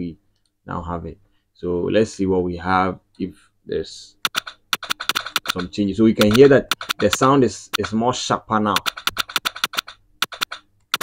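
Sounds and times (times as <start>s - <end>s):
keyboard key clicks: 4.2s - 8.0s, 8.8s - 11.0s
stuttering music track: 4.3s - 8.0s, 8.8s - 11.0s.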